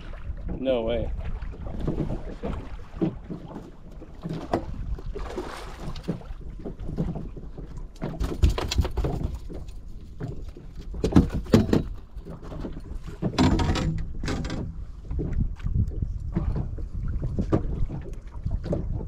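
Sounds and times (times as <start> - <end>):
wind rumbling on microphone: 0.0 - 19.0
landing net rattling on deck: 8.1 - 9.6, 13.2 - 14.9
sharp knocks: 13.2 - 14.8.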